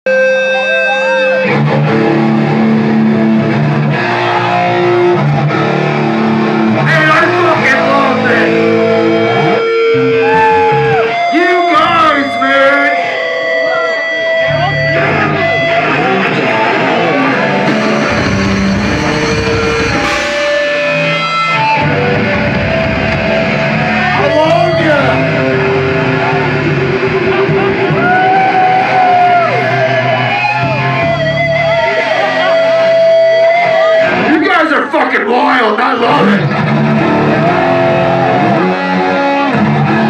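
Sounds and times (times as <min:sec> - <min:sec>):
drums: 0:00.1 - 0:12.4, 0:13.0 - 0:34.9, 0:36.0 - 0:40.0
distorted electric guitars: 0:00.1 - 0:40.0.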